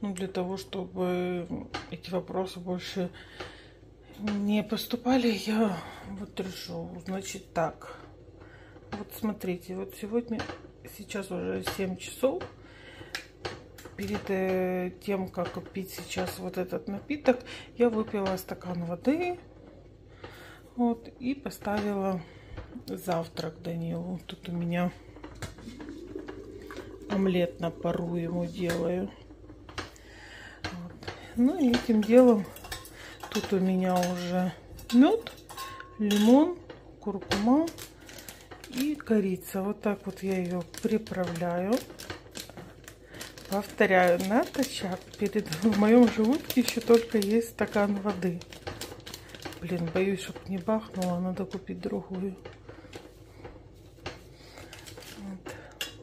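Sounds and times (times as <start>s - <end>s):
faint wavering hum: 22.1s - 37.0s.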